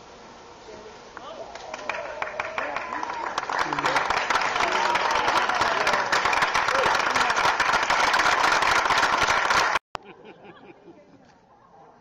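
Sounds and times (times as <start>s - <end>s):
crowd applauding and cheering: 1.5s - 9.8s.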